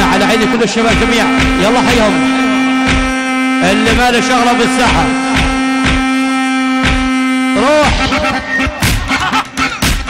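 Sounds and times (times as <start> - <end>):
held drone note: 0.0 - 9.3
drum beats: 0.0 - 10.0.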